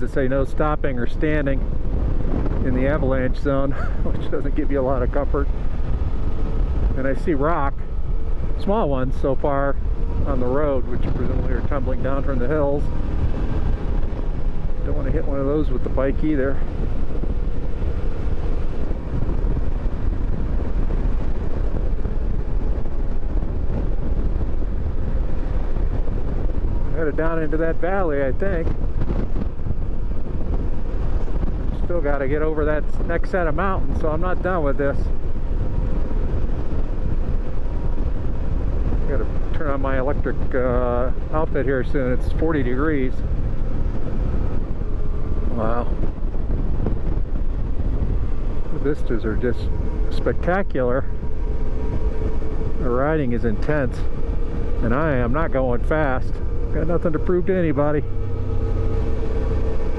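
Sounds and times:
motorcycle engine cruising: 0:00.0 - 0:59.9
wind rushing over microphone: 0:00.0 - 0:59.9.

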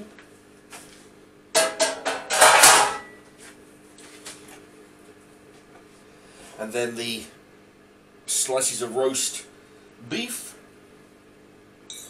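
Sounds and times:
metal kitchenware clanking: 0:01.6 - 0:03.2.

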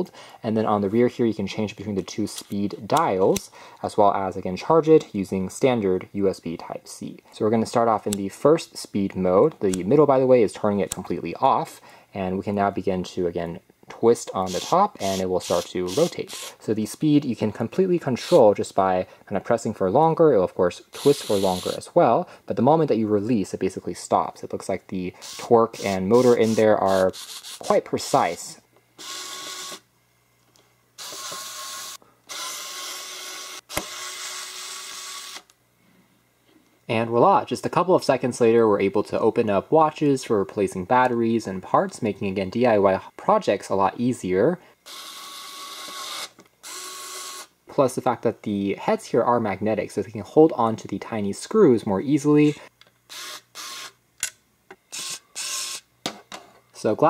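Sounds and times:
electric screwdriver whirring: 0:15.4 - 0:16.5, 0:29.0 - 0:29.8, 0:31.0 - 0:35.5, 0:44.9 - 0:47.5, 0:53.1 - 0:53.9, 0:54.9 - 0:55.8.

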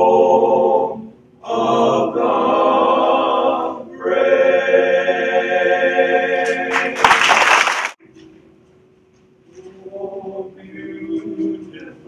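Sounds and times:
men's chorus singing in harmony: 0:00.0 - 0:07.0, 0:09.6 - 0:12.0.

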